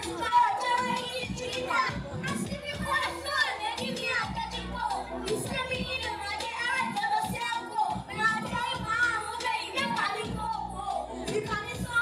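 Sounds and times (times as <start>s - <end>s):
boy speaking into a microphone: 0.0s - 12.0s.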